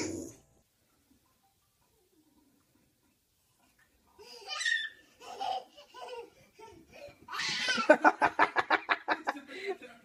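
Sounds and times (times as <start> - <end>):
people laughing: 7.6 - 10.0.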